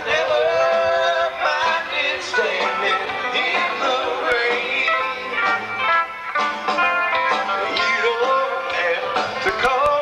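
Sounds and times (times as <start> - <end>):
live country band playing: 0.0 - 10.0.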